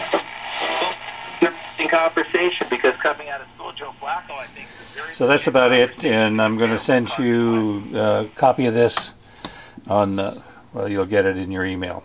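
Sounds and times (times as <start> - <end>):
voice broadcast through radio speaker: 0.0 - 8.4
steady low hum: 0.0 - 12.0.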